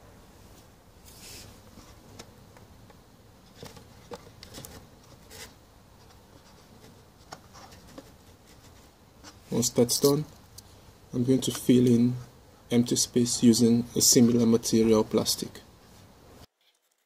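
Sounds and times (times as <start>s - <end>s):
low background hiss: 0.0s - 17.0s.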